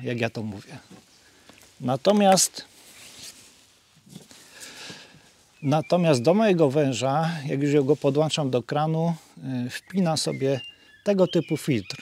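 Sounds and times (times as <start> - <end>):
breathy intake of air: 4.4 - 5.3.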